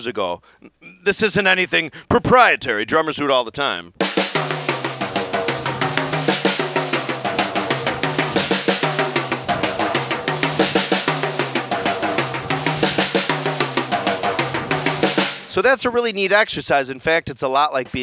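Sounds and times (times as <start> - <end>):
drum kit single strokes: 4.0 - 15.7, 17.8 - 18.0.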